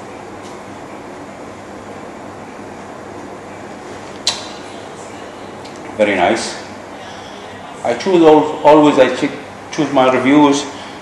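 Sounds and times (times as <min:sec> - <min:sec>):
steady background hum: 0:00.0 - 0:11.0
sharp click: 0:04.2 - 0:04.5.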